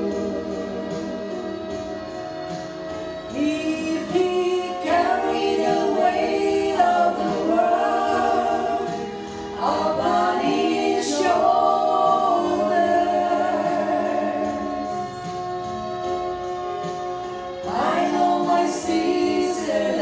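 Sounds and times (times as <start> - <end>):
women singing gospel in harmony: 0.0 - 15.9, 17.6 - 20.0.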